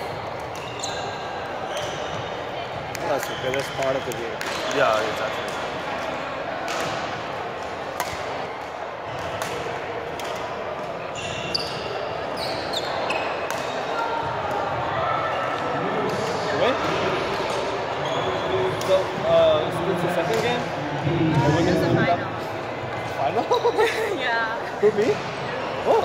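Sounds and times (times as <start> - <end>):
shoes squeaking on gym floor: 0.4 - 2.4, 11.1 - 14.0
rackets striking shuttlecocks: 7.8 - 10.6.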